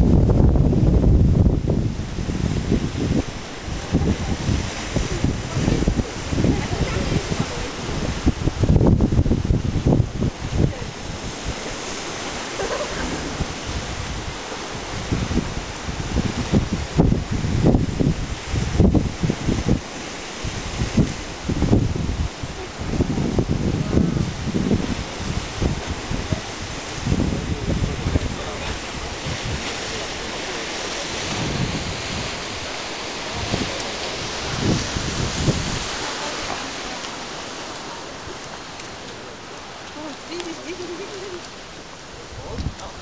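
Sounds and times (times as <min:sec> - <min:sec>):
waves breaking against rocks: 0:00.0 - 0:43.0
wind buffeting microphone: 0:00.0 - 0:43.0.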